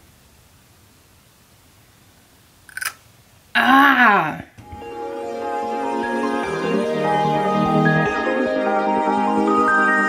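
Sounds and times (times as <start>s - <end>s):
woman groaning: 3.6s - 4.6s
soft background music: 4.6s - 10.0s.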